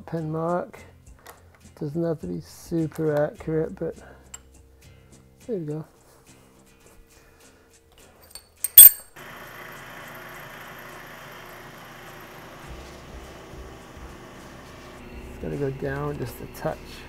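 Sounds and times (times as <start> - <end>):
sharp metallic clank: 8.6 - 9.2
milling machine spindle running: 9.2 - 15.0.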